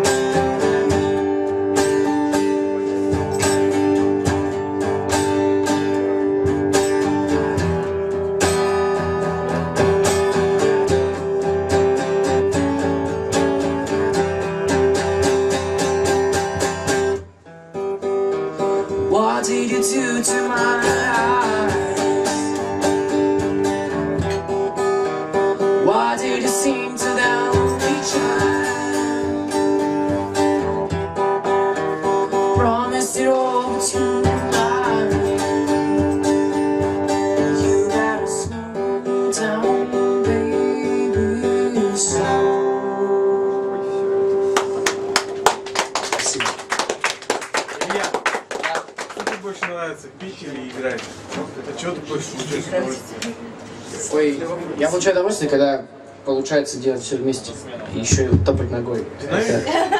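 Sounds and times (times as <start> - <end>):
acoustic guitar strumming: 0.0 - 47.4
person singing: 19.0 - 22.6, 25.8 - 29.3, 32.3 - 35.9, 37.2 - 44.1.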